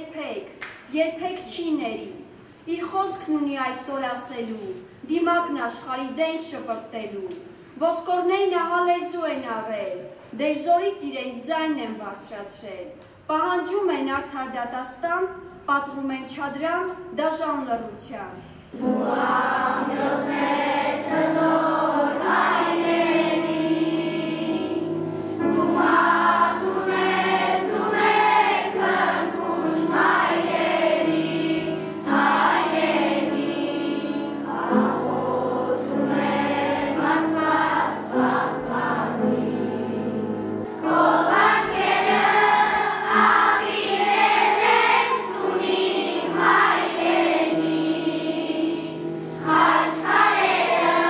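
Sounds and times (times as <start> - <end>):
children's choir singing: 18.7 - 51.0.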